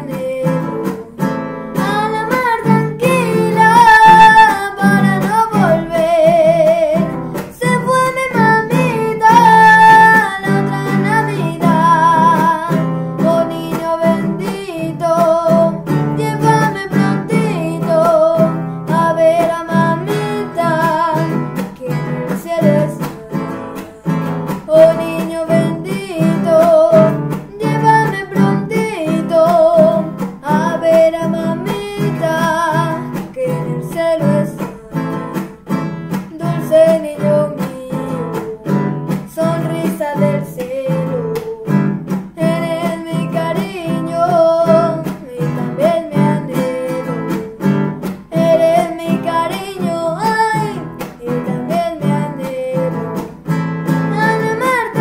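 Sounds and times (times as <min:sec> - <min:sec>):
boy singing: 0:00.0 - 0:55.0
classical guitar strumming: 0:00.0 - 0:55.0.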